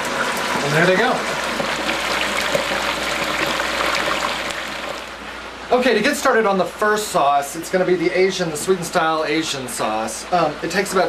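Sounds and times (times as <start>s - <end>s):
oil bubbling and crackling: 0.0s - 5.4s.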